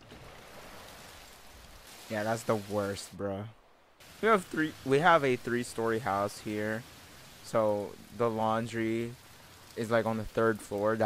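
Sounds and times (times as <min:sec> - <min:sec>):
steady rain hiss: 0:00.0 - 0:11.0.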